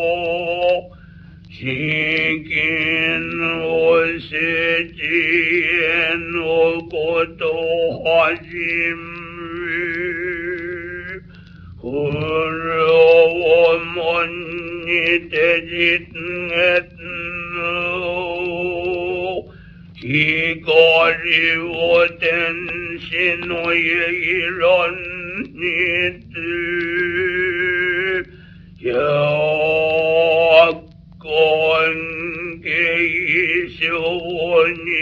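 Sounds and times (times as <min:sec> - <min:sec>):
record surface noise: 0:00.0 - 0:35.0
man chanting with vibrato: 0:01.5 - 0:11.2, 0:11.8 - 0:35.0.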